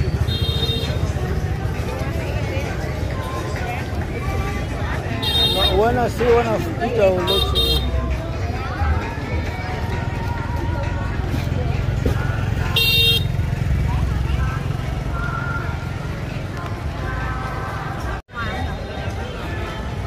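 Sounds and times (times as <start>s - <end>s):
crowd chatter: 0.0s - 20.0s
motorbike traffic rumble: 0.0s - 20.0s.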